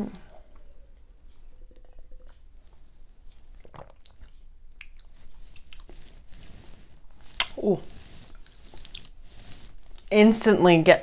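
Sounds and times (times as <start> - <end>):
wet mouth smacks and clicks: 3.7 - 5.9, 7.4 - 7.6.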